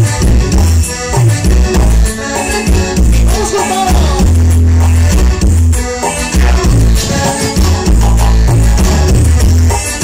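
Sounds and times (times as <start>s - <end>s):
heavy bass line: 0.0s - 10.0s
keyboard-led dance music: 0.0s - 10.0s
tropical dance music over pa: 2.4s - 4.3s.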